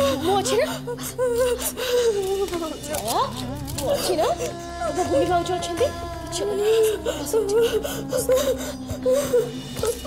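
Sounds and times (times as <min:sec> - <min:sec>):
woman whimpering and sobbing: 0:00.0 - 0:10.0.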